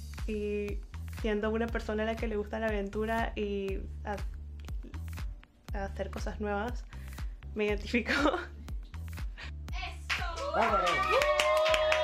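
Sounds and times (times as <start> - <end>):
background music with a beat: 0.0 - 12.0
person clapping hands: 10.0 - 12.0.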